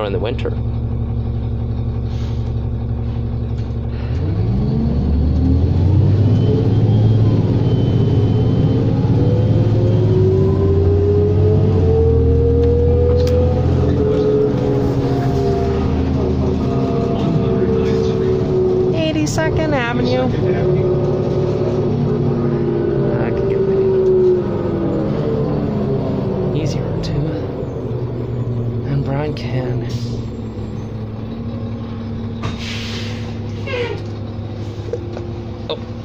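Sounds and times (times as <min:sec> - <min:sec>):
diesel bus engine: 0:00.0 - 0:36.0.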